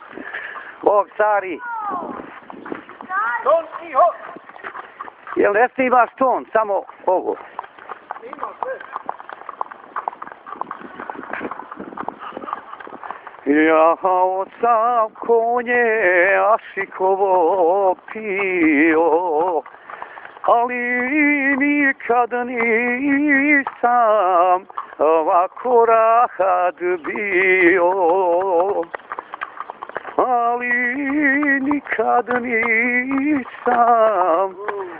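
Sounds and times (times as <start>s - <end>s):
horse hooves on asphalt: 0.0s - 34.9s.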